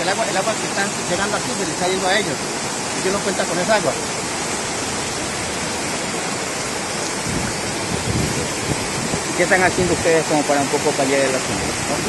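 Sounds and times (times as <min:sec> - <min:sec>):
floodwater rushing: 0:00.0 - 0:12.0.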